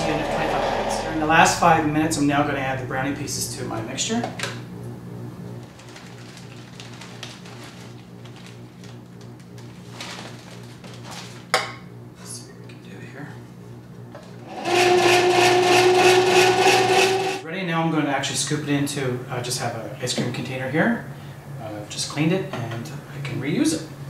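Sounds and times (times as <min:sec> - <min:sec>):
ice cream maker motor hum: 0:14.4 - 0:17.4.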